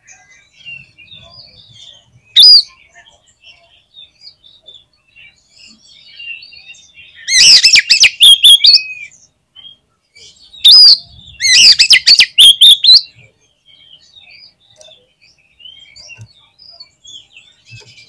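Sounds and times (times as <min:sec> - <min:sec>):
loud whistled bird song: 0:00.0 - 0:18.0
soft bird chirps: 0:00.0 - 0:18.0.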